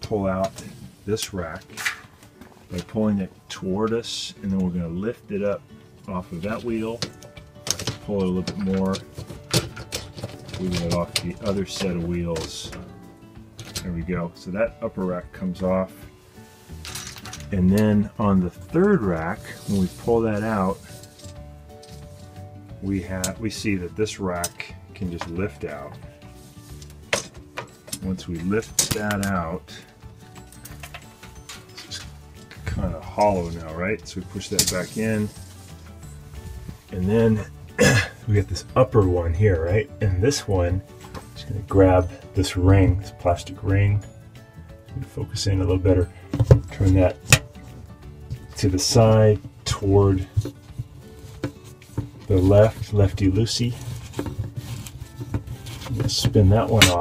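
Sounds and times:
soft background music: 0:00.0 - 0:57.0
plastic rack clacking: 0:07.0 - 0:12.9
plastic rubbing: 0:19.2 - 0:22.4, 0:46.3 - 0:57.0.

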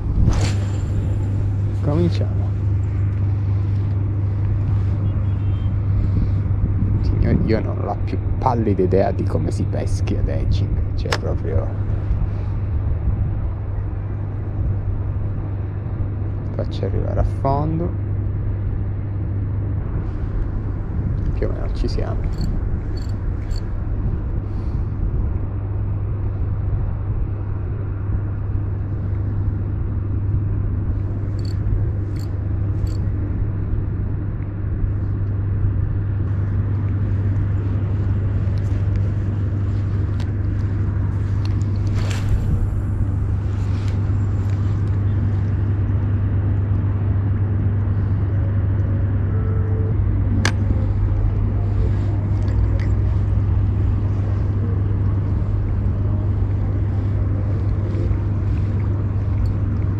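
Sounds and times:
ship engine drone: 0:00.0 - 0:16.4, 0:17.0 - 0:59.9
short clicks: 0:22.3 - 0:23.6, 0:31.4 - 0:33.0.

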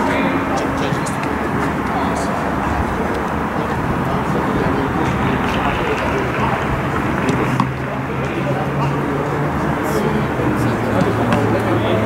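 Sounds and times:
indistinct voices: 0:00.0 - 0:12.0
steady rumble: 0:00.0 - 0:12.0.

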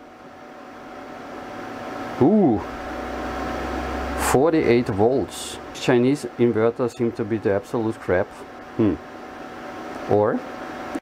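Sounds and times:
inverter hum and fan whir: 0:00.0 - 0:11.0.

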